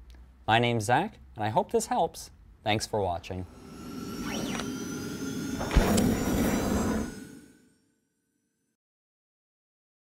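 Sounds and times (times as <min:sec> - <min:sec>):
sharp hit: 0:03.4 - 0:07.7
whoosh: 0:03.4 - 0:07.8.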